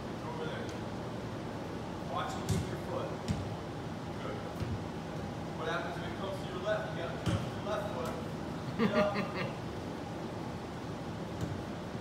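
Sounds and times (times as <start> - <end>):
short laugh: 8.7 - 9.6.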